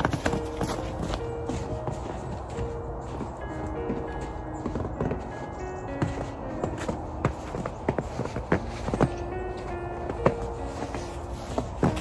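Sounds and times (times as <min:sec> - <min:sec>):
footsteps crunching in snow: 0:00.0 - 0:12.0
soft background music: 0:00.0 - 0:12.0.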